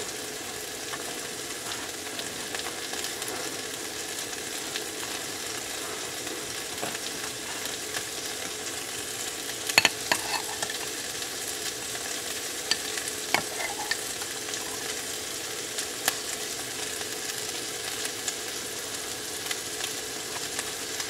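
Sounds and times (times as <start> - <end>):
sausage sizzling in a frying pan: 0.0 - 21.0
knife and jar clicking: 9.8 - 10.9, 12.7 - 14.8.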